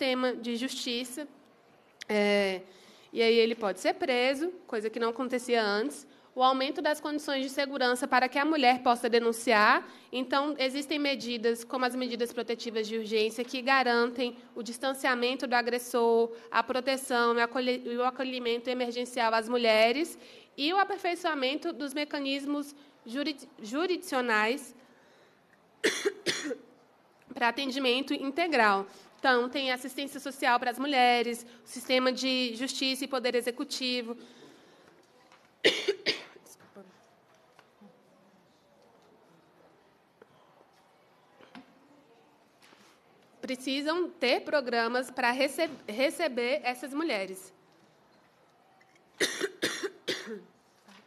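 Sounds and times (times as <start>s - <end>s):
person coughing: 25.8s - 26.7s, 35.6s - 36.4s, 49.2s - 50.5s.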